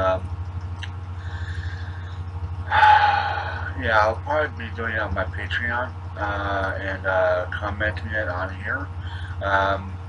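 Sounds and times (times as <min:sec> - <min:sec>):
low electrical hum: 0:00.0 - 0:10.0
man saying um and uh: 0:03.7 - 0:08.7, 0:09.4 - 0:09.9.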